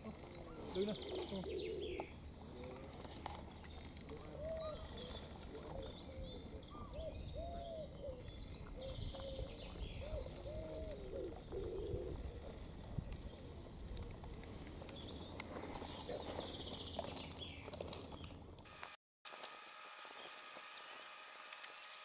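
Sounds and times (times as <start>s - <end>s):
bird cooing: 0.0s - 2.9s, 4.1s - 14.4s
small birds chirping: 0.0s - 18.6s.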